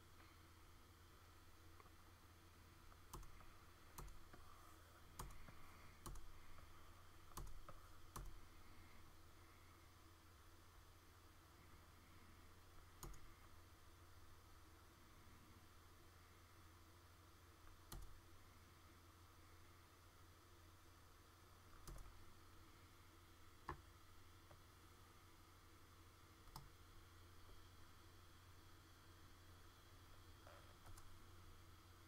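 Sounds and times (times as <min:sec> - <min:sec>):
low steady hum: 0:00.0 - 0:32.0.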